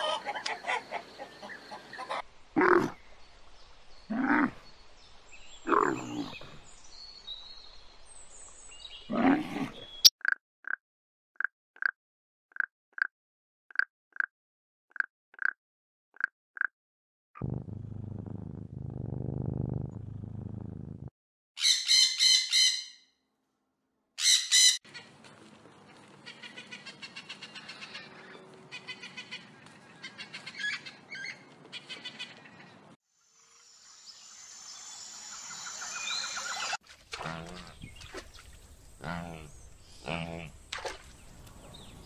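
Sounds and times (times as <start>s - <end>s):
low steady animal call: 2.1s - 3.0s, 39.0s - 40.6s
macaws squawking and chirping: 26.2s - 32.8s.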